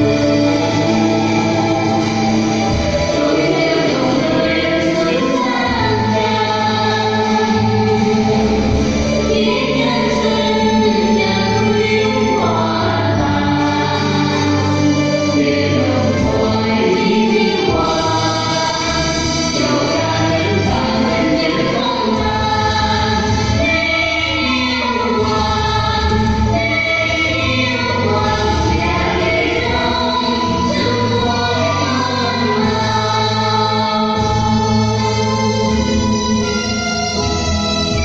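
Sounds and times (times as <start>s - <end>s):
voices singing held notes: 0.0s - 37.4s
instrumental accompaniment: 0.0s - 38.0s.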